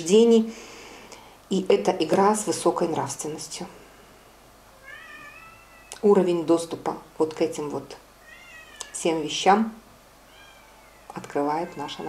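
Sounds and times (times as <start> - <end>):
high-pitched animal call: 4.8 - 6.0, 8.2 - 9.0, 10.3 - 12.0.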